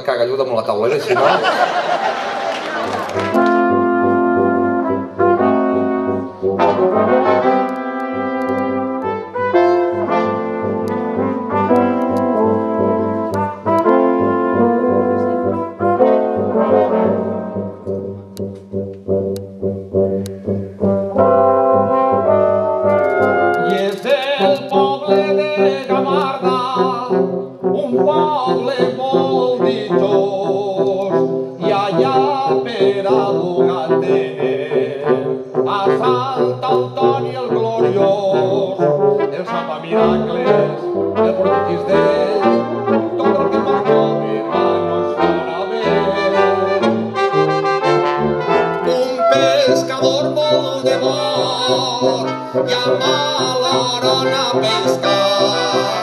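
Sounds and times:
brass chords: 1.2 - 56.0
low tuba bass line: 2.8 - 56.0
sharp clicks: 7.6 - 9.1, 22.9 - 25.0.

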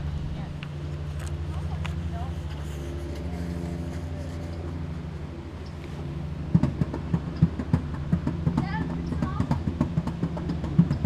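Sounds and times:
motor engine humming: 0.0 - 11.0
sharp knocks: 6.5 - 11.0.

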